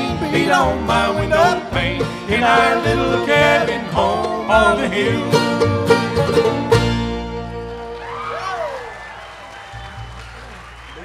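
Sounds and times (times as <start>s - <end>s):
audience applauding: 7.6s - 11.0s
person cheering in crowd: 7.8s - 11.0s.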